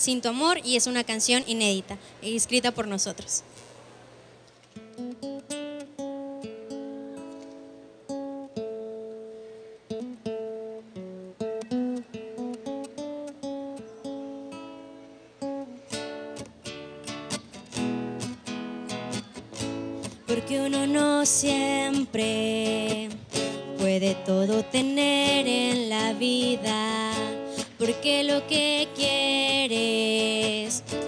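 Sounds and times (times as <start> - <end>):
acoustic guitar playing: 4.7 - 31.0.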